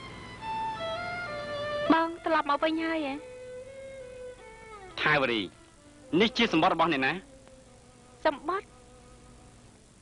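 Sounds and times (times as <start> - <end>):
faint buzzing hum: 0.0 - 10.0
film dialogue: 0.1 - 9.6.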